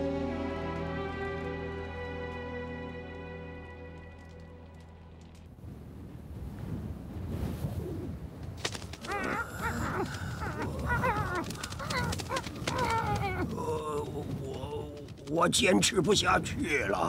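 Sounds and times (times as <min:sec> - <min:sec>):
soft music: 0:00.0 - 0:05.5
rushing wind: 0:05.5 - 0:17.0.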